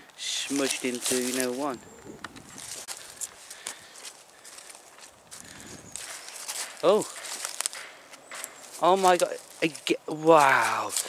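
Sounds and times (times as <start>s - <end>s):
footsteps through dry leaves: 0.2s - 11.0s.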